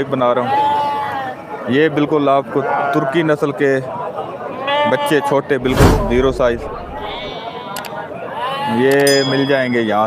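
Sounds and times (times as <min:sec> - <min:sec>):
sheep bleating: 0:00.4 - 0:01.4, 0:04.5 - 0:05.6, 0:07.0 - 0:08.9.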